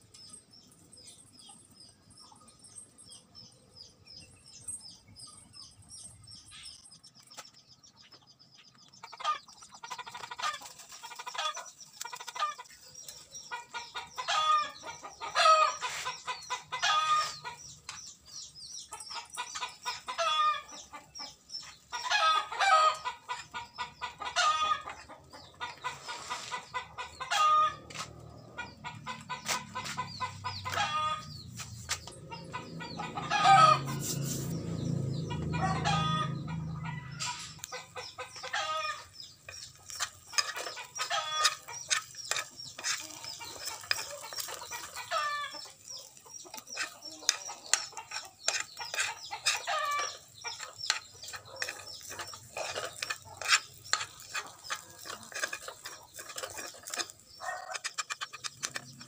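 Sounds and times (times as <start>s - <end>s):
chickens clucking: 0.0s - 59.0s.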